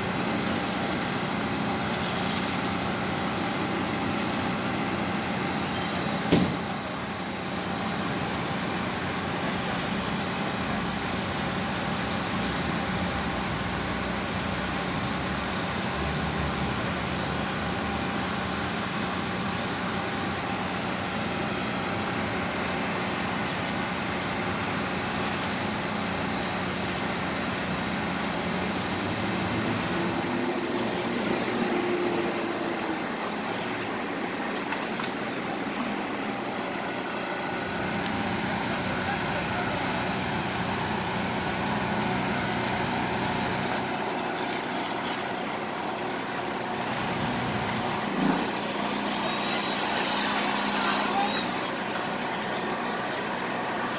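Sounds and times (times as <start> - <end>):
truck engine idling: 0.0 - 53.9.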